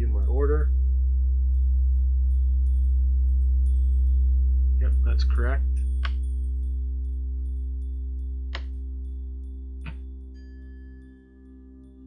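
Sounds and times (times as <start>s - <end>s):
low electrical hum: 0.0s - 11.2s.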